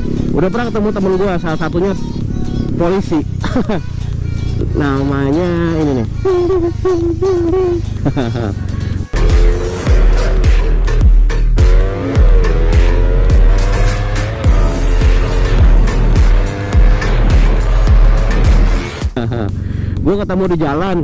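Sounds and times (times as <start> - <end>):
motorcycle engine at high revs: 0.0 - 20.3
loud music with heavy bass: 4.5 - 19.5.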